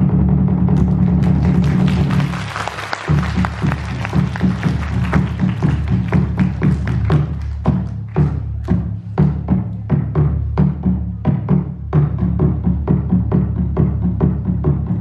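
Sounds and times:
barrel drum beaten with sticks: 3.1 - 15.0.

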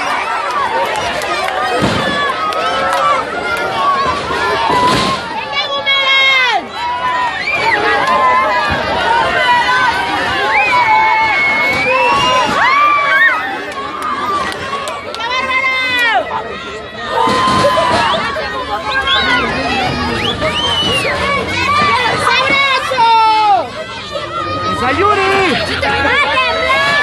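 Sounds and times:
crowd shouting and chattering: 0.0 - 27.0.

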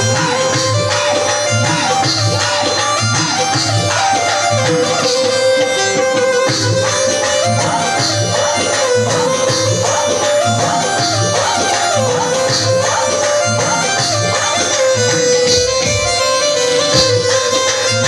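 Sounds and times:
folk music over loudspeakers: 0.0 - 18.0.

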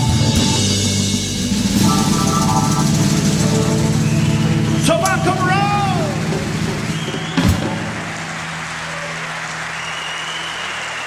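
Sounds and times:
live rock band playing: 0.0 - 8.7.

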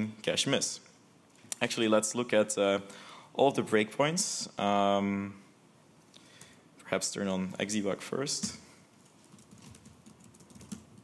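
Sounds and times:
typing on computer keyboard: 9.2 - 11.0.

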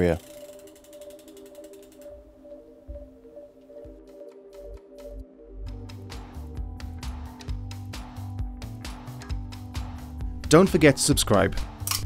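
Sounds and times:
faint rapid ticking: 0.0 - 2.2.

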